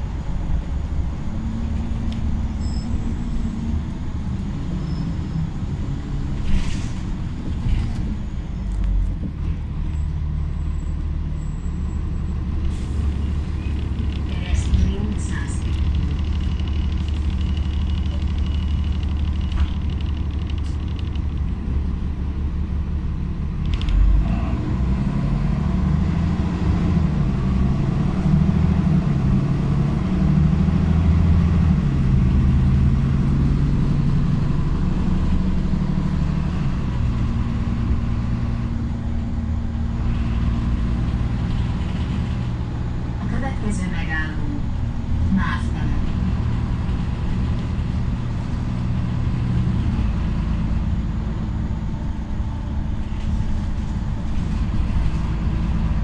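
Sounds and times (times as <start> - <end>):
bus diesel engine driving: 0.0 - 56.0.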